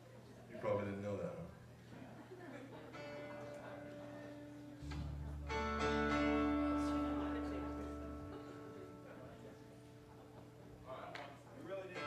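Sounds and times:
guitar chord ringing: 0:03.0 - 0:09.6
strummed guitar chord: 0:04.8 - 0:09.3.

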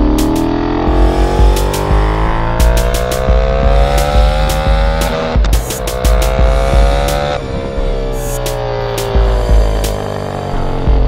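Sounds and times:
electronic music with steady beat: 0:00.0 - 0:11.0
motorcycle engine accelerating: 0:00.0 - 0:11.0.

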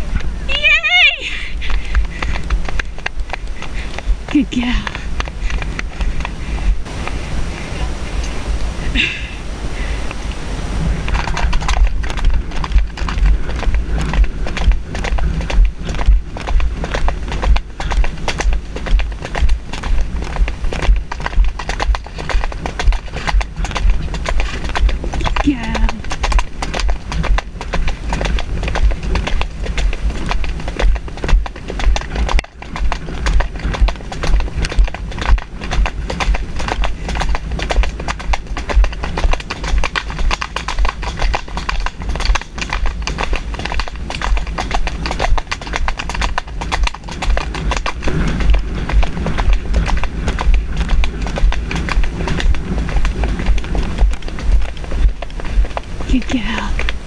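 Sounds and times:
hooves clip-clopping on dirt: 0:00.0 - 0:57.0
steady low rumble: 0:00.0 - 0:57.0.

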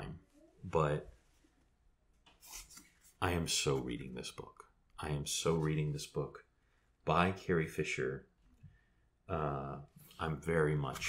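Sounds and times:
brief scrape: 0:02.4 - 0:02.9.

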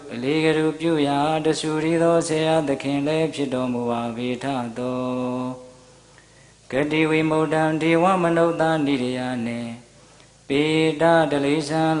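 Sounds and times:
man chanting into microphone: 0:00.0 - 0:05.8, 0:06.7 - 0:09.9, 0:10.5 - 0:12.0.

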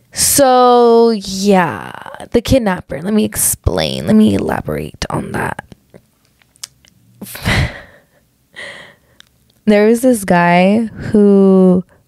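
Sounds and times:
woman laughing breathily: 0:07.2 - 0:09.0.

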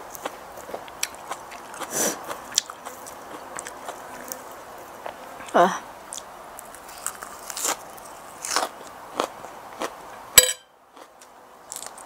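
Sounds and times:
close-up chewing: 0:00.0 - 0:05.2, 0:06.1 - 0:10.0.

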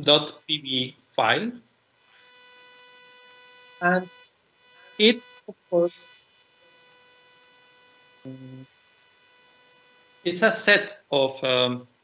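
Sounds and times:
man murmuring: 0:00.0 - 0:01.5, 0:10.3 - 0:11.8
electrical hum: 0:00.0 - 0:11.8.

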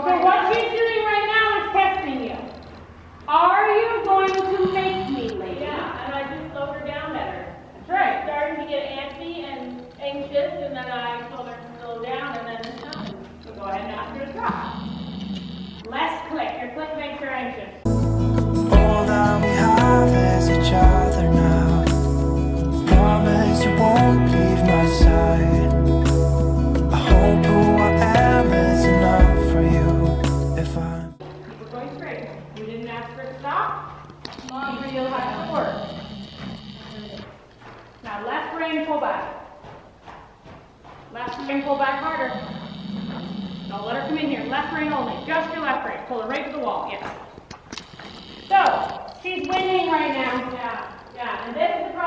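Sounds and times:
people talking: 0:00.0 - 0:02.5, 0:03.3 - 0:14.6, 0:15.9 - 0:17.8, 0:31.5 - 0:33.8, 0:34.4 - 0:35.8, 0:38.1 - 0:39.4, 0:41.2 - 0:42.4, 0:43.8 - 0:47.2, 0:48.5 - 0:52.0
person talking indistinctly: 0:18.4 - 0:31.2
horse hoofbeats on dirt: 0:31.2 - 0:52.0.

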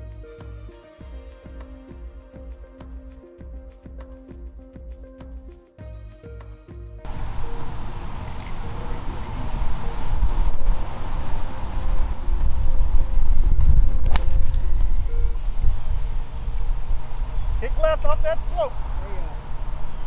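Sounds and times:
wind rumbling on microphone: 0:07.1 - 0:20.0
golf club striking ball: 0:14.0 - 0:14.9.

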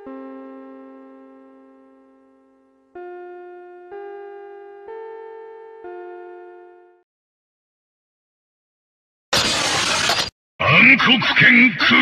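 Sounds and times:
harsh crashing noise burst: 0:09.3 - 0:10.3
deep announcer voice: 0:10.6 - 0:12.0.

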